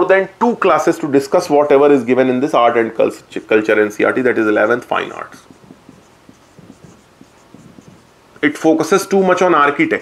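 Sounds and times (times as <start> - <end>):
marker pen writing on whiteboard: 4.5 - 8.4.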